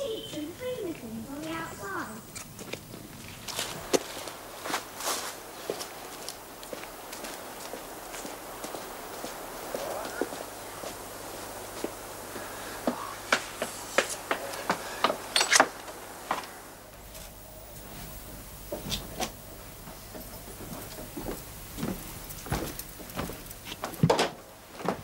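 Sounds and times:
footsteps on hard surface: 2.5 - 17.4, 20.6 - 24.2.

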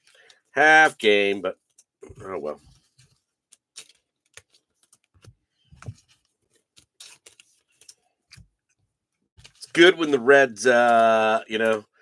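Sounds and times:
trading cards clicking and sliding: 2.7 - 8.6.

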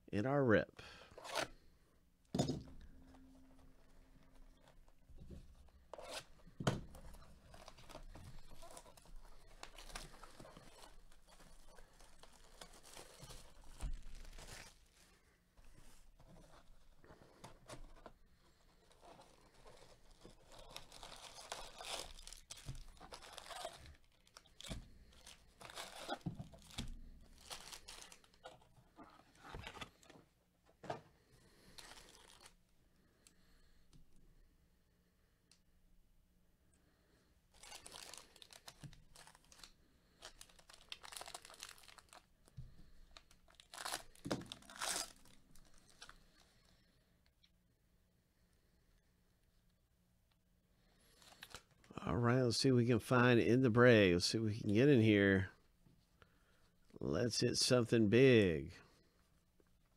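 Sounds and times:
plastic wrap tearing and crinkling: 5.7 - 15.0, 18.8 - 28.6, 31.7 - 32.6, 37.5 - 42.3, 43.1 - 46.5, 51.1 - 51.8.

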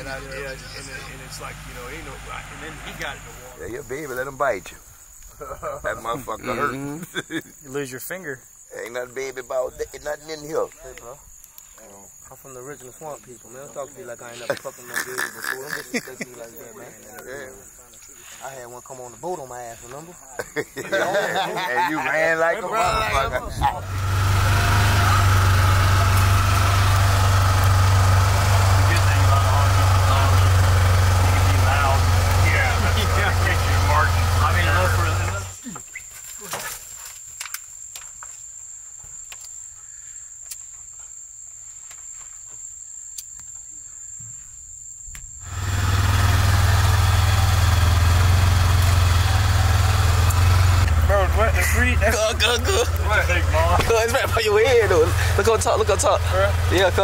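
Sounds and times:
vehicle engine droning: 0.0 - 4.4, 22.7 - 35.6, 45.4 - 57.0.

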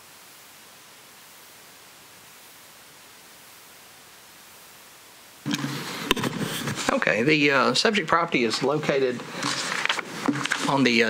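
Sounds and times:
faint audio hiss: 0.0 - 11.0
room noise: 0.0 - 11.0.

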